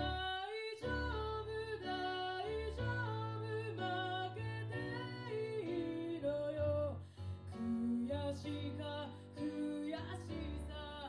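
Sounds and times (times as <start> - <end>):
piano chords: 0.0 - 11.0
woman singing: 0.0 - 11.0.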